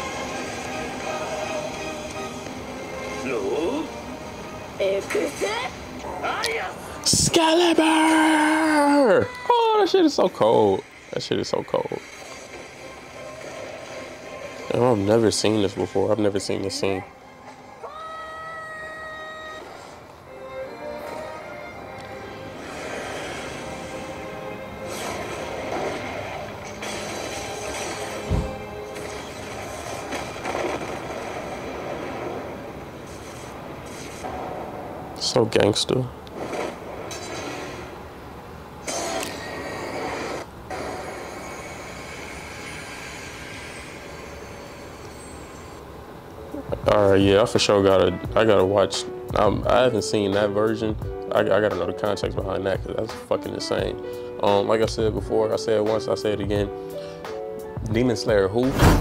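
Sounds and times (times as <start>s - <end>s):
steady hissing rumble: 0.0s - 59.0s
rushing noisy burst: 38.8s - 45.6s.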